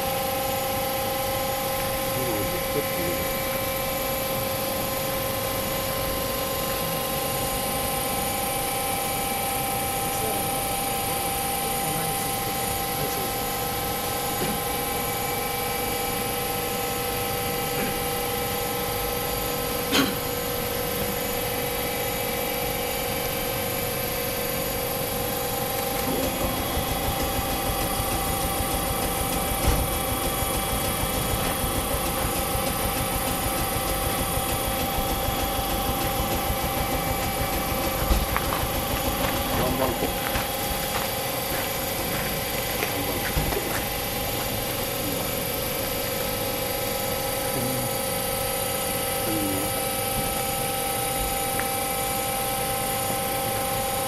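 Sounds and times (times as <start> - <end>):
electrical hum with whining tones: 0.0 - 54.0
knock: 26.1 - 41.0.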